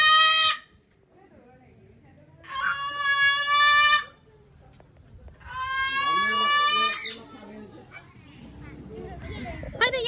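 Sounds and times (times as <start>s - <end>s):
cockatoo screeching: 0.0s - 0.7s, 2.4s - 4.2s, 5.4s - 7.3s.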